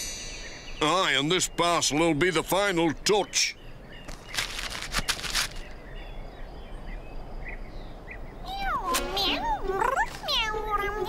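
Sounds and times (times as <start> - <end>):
wrapping paper rustling: 4.1 - 5.7
cat meowing: 8.5 - 11.0.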